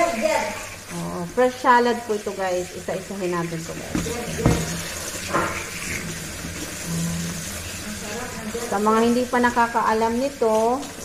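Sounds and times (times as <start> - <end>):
tap water running: 0.0 - 11.0.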